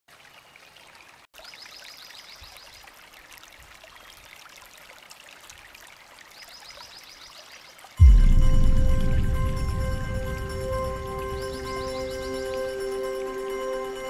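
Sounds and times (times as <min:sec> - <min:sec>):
trickling water: 0:00.1 - 0:08.0
high rapid trill: 0:08.0 - 0:14.0.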